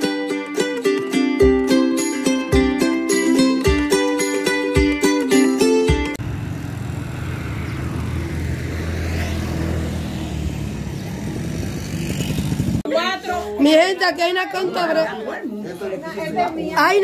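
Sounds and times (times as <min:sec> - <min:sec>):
plucked-string intro music: 0:00.0 - 0:06.2
street background rumble: 0:06.1 - 0:15.0.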